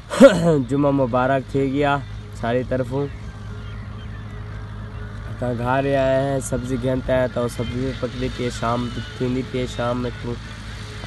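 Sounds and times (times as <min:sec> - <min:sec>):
tractor engine droning: 0:00.0 - 0:11.0.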